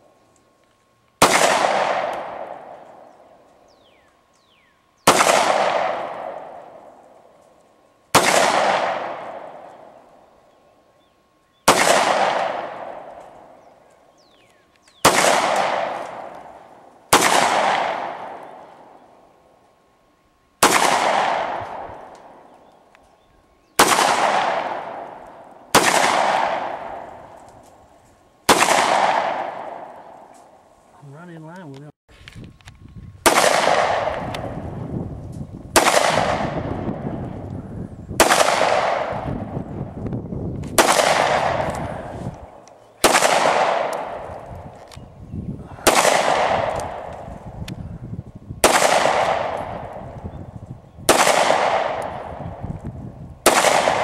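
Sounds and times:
pistol shots with echo: 1.2s - 3.3s, 5.0s - 7.0s, 8.1s - 10.0s, 11.6s - 13.6s, 15.0s - 19.0s, 20.6s - 22.5s, 23.8s - 27.4s, 28.5s - 30.3s, 33.2s - 34.6s, 35.7s - 37.4s, 38.2s - 39.5s, 40.8s - 44.4s, 45.8s - 47.3s, 48.6s - 50.2s, 51.1s - 52.6s, 53.4s - 54.0s.

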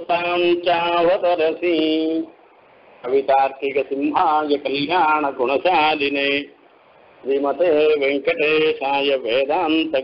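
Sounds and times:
man chanting melodically: 0.0s - 2.4s, 3.0s - 6.6s, 7.2s - 10.0s.

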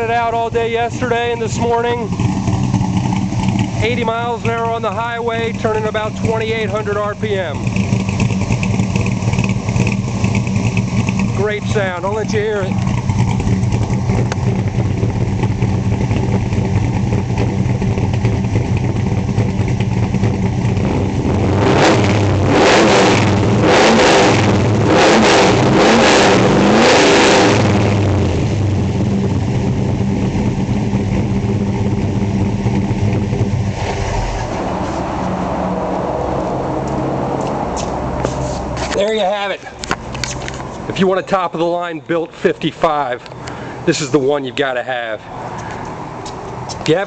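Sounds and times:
engine idling lopey and revving: 0.0s - 47.0s.

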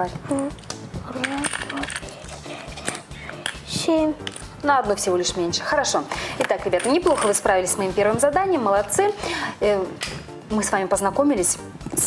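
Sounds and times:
game tokens clattering: 1.1s - 4.5s.

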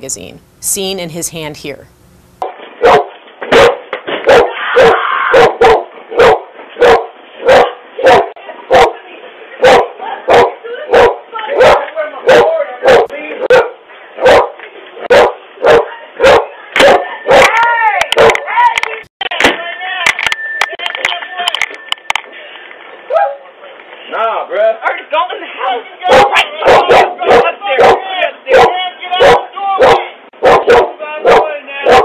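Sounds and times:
dog barking: 2.8s - 9.0s, 9.6s - 17.5s, 18.1s - 18.4s, 26.1s - 32.0s.

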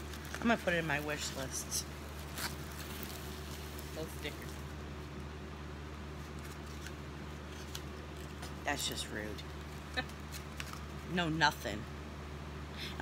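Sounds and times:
handling plastic film: 0.0s - 4.8s, 6.1s - 8.6s, 9.4s - 11.1s
faint crinkles: 0.0s - 5.4s, 6.0s - 8.6s, 9.4s - 11.1s
steady low hum: 0.0s - 13.0s.

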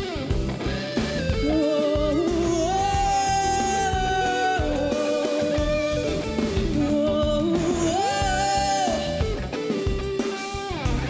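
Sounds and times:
electric guitar: 0.0s - 11.0s
live pop-rock band: 0.0s - 11.0s.

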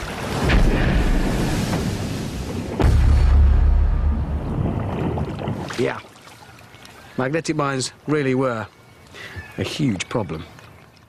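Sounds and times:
underwater explosion boom: 0.0s - 5.8s
water splashing: 0.0s - 8.6s
low rumble: 0.4s - 5.6s.

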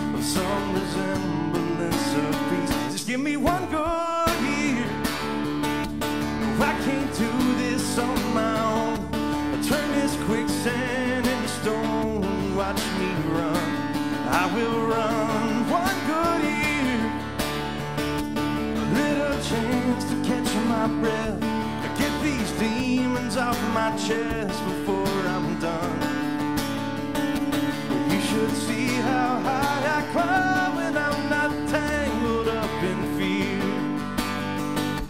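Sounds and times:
acoustic guitar strumming: 0.0s - 35.0s
country band playing: 0.0s - 35.0s.

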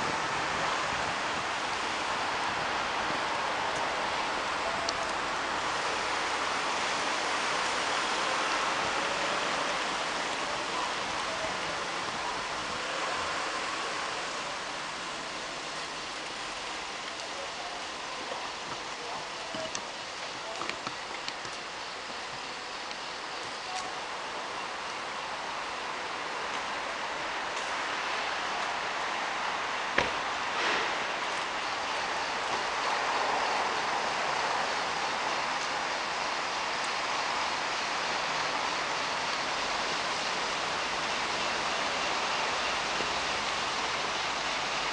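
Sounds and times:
outdoor ambience hiss: 0.0s - 44.9s.

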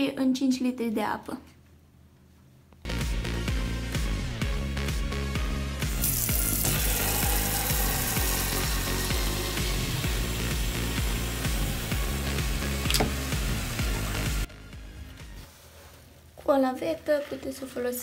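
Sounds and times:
background music with bass: 2.8s - 15.5s
water running into bucket: 5.9s - 14.4s.

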